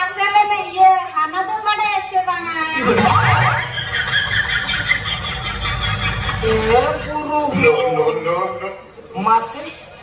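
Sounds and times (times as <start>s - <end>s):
comic rising pitch glide: 2.8s - 4.4s.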